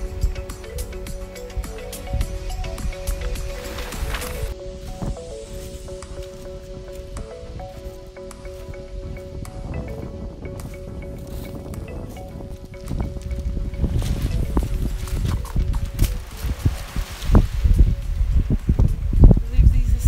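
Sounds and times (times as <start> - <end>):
background music with held tones: 0.0 - 20.0
wind buffeting microphone: 0.0 - 20.0.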